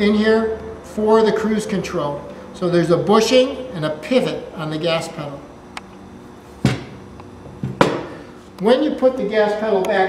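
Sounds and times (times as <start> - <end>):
sharp knocks of pedal assembly: 6.6 - 8.1.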